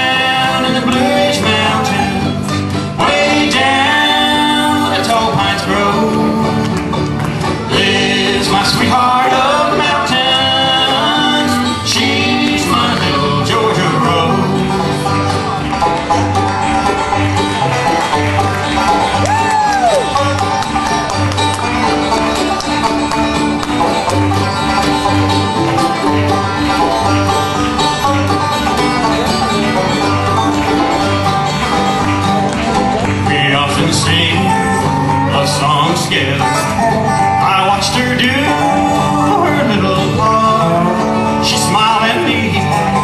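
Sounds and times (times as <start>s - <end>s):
acoustic guitar: 0.0s - 43.0s
banjo: 0.0s - 43.0s
upright bass notes: 0.0s - 43.0s.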